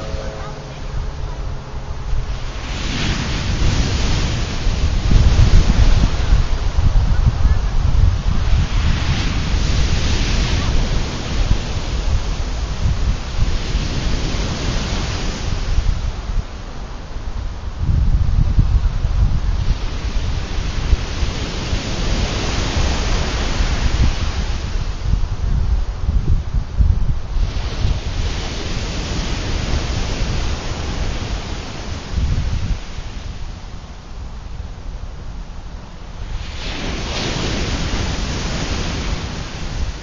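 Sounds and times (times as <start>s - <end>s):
ocean surf breaking: 0.0s - 17.3s, 19.1s - 25.2s, 27.3s - 40.0s
wind buffeting microphone: 0.0s - 40.0s.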